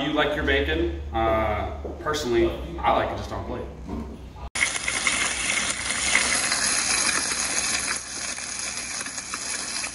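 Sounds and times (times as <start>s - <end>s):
bacon sizzling in a frying pan: 4.6s - 9.9s.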